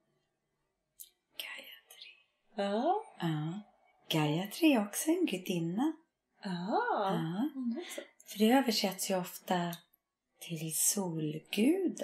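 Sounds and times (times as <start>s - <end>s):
person whispering: 1.4s - 2.2s.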